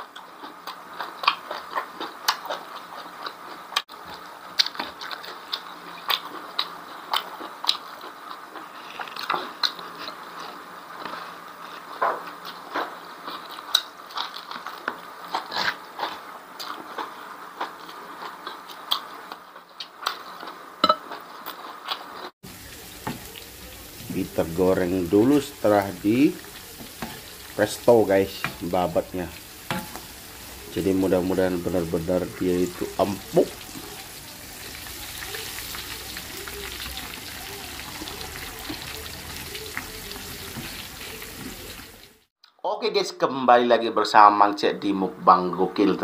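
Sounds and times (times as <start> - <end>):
wet chewing and lip smacking: 0.0 - 22.3
hot oil sizzling in a wok: 22.4 - 42.3.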